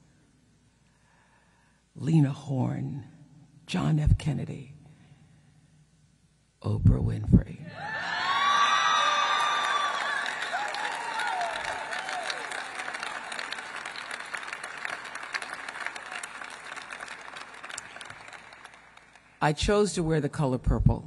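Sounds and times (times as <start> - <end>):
shouts and whoops: 7.6 - 13.6
audience applauding and cheering: 7.7 - 19.4.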